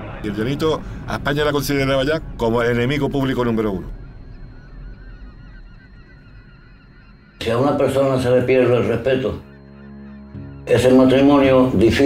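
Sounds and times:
low rumble: 0.0 - 11.9
flock of birds calling: 0.0 - 12.0.

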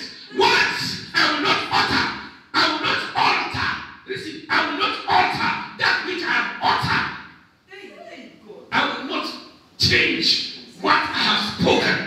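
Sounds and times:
preacher shouting: 0.0 - 3.8.

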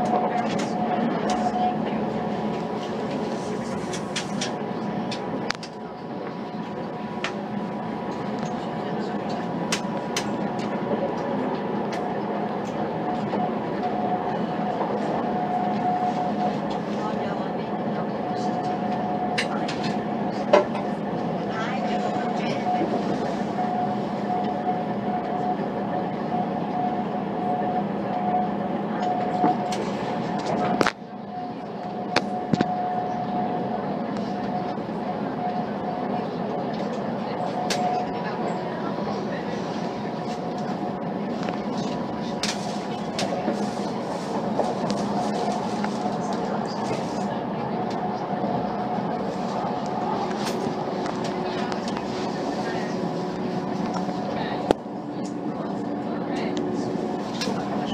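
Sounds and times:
held whine: 0.0 - 57.9
train engine rumble: 0.0 - 57.9.

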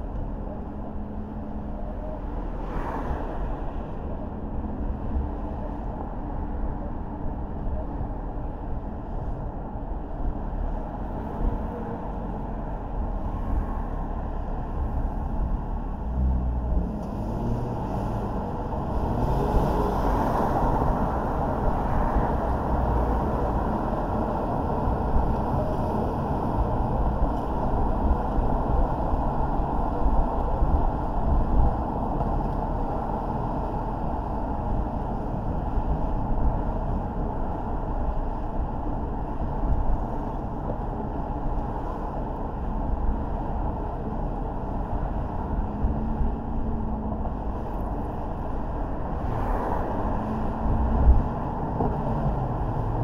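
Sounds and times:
car driving road noise: 0.0 - 53.0.

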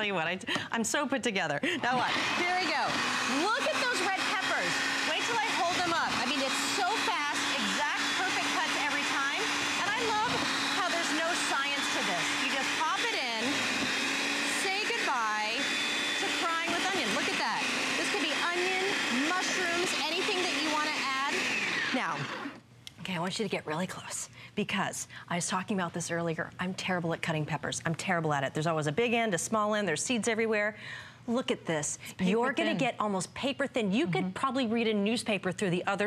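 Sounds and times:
food slicer motor humming: 1.9 - 22.6.

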